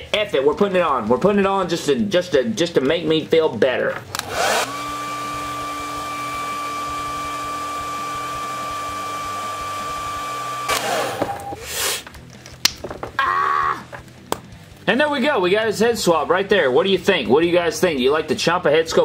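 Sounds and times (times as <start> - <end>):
hot-air blower running: 4.1 - 11.7.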